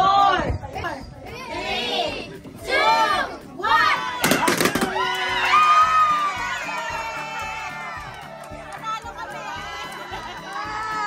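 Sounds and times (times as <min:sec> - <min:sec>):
music: 0:00.0 - 0:11.0
cheering: 0:04.0 - 0:11.0
children shouting excitedly: 0:09.2 - 0:11.0.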